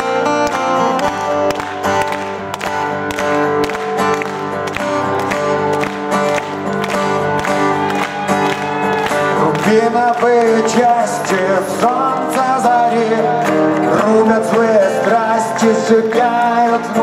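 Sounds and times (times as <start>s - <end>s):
acoustic guitars strumming: 0.0s - 17.0s.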